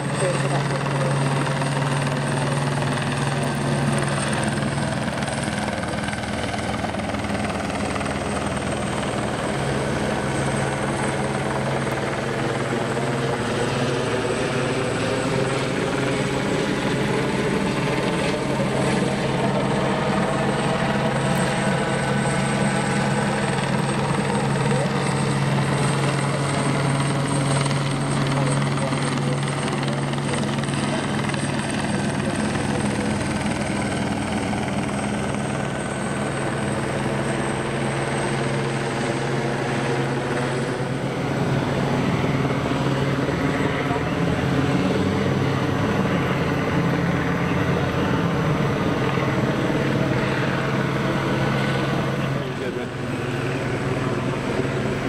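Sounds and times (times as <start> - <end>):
helicopter hovering: 0.0 - 55.0.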